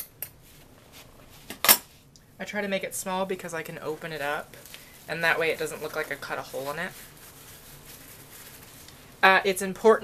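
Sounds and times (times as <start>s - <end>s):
faint rustling of wet felt: 3.0s - 9.8s.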